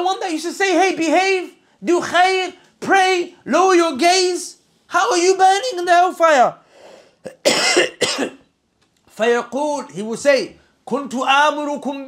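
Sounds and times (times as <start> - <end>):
man coughing: 7.2 - 8.5.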